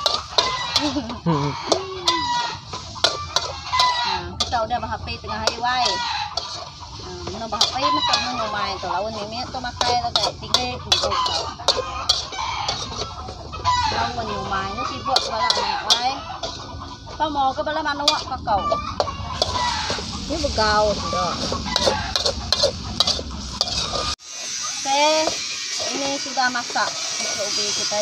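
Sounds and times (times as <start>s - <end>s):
low rumble: 0.0s - 24.2s
chickens clucking: 0.0s - 28.0s
metal spatula scraping wok: 0.0s - 28.0s
person speaking: 0.8s - 2.6s, 7.0s - 11.5s, 13.8s - 16.2s, 20.2s - 22.0s.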